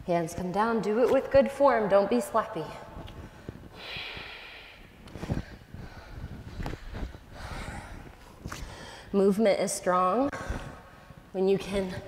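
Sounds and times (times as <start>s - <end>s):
woman breathing hard: 3.2s - 9.2s.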